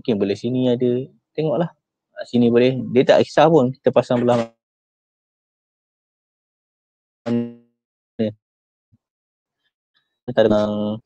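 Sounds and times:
man making wordless sounds: 0.0 - 4.6, 7.3 - 8.4, 10.3 - 11.0.

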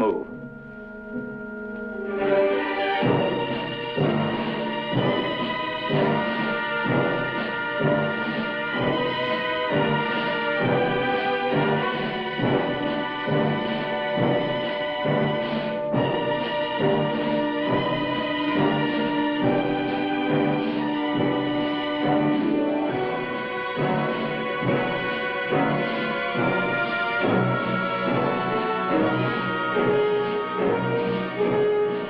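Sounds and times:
orchestral film music: 0.0 - 32.0.

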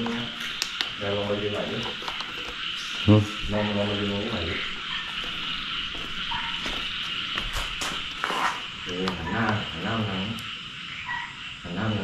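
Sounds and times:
frogs croaking: 0.0 - 12.0
insects chirping: 0.0 - 12.0.

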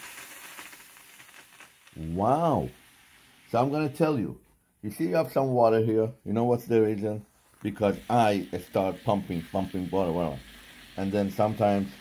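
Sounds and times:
steam iron hissing: 0.0 - 4.1, 7.4 - 12.0.

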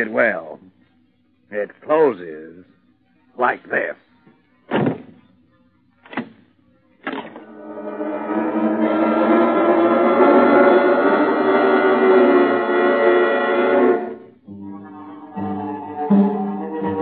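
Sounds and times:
dramatic music chord: 7.4 - 17.0.

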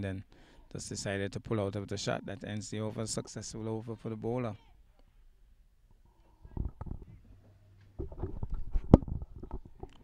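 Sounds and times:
camera handling rustles and knocks: 8.0 - 10.0.

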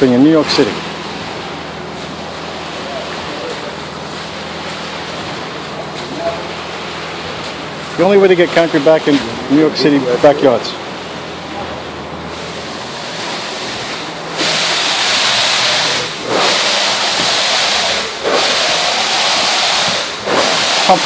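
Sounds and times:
concrete pump humming: 0.0 - 21.0
concrete pump rushing hiss: 12.3 - 21.0.

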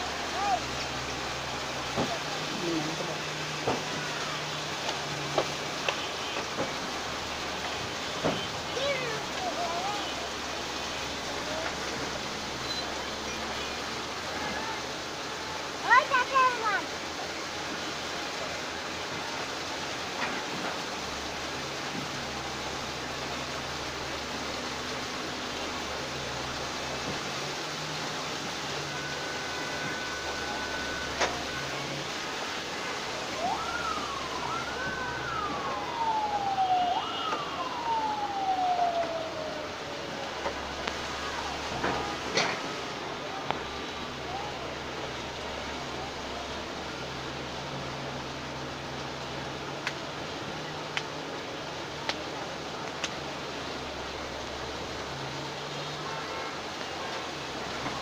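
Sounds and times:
road traffic: 0.0 - 58.0
siren wailing: 27.9 - 44.8.

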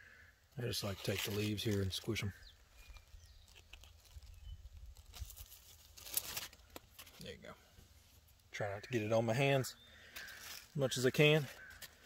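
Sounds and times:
leaves rustling by hand: 0.7 - 8.3, 10.1 - 12.0.

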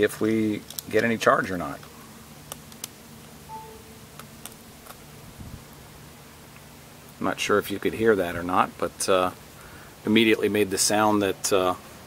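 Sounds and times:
faint phone charging chime: 3.5 - 4.1.

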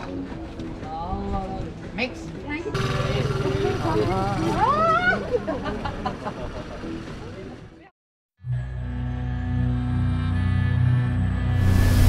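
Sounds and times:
laughter: 5.1 - 6.9.

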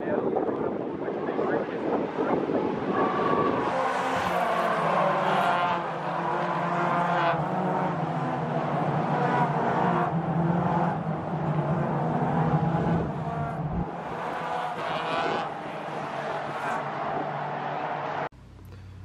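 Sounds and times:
race car engines passing: 0.0 - 18.3.

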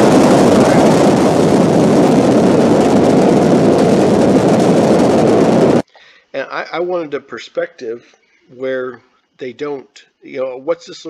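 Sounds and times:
deep rocket engine rumble: 0.0 - 5.8.

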